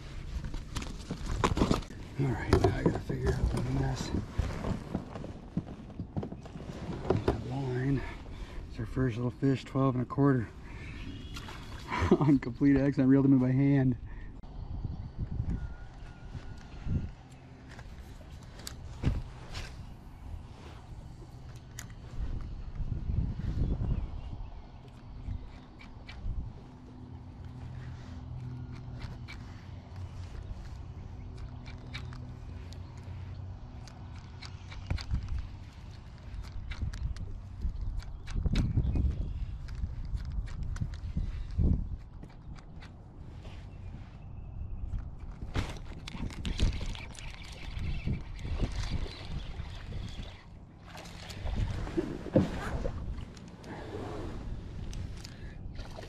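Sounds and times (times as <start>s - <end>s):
low rumbles: 0.0s - 56.0s.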